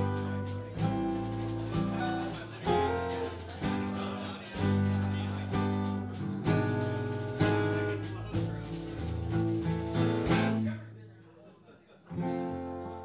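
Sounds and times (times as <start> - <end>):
acoustic guitar strumming chords: 0.0 - 10.8
bass guitar: 0.0 - 10.8.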